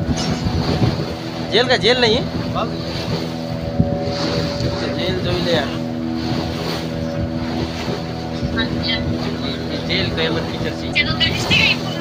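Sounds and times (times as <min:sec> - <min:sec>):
boat engine running: 0:00.0 - 0:12.0.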